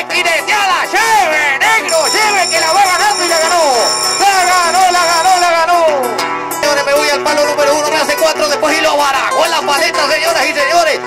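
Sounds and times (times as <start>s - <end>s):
guitar accompaniment: 0.0s - 11.0s.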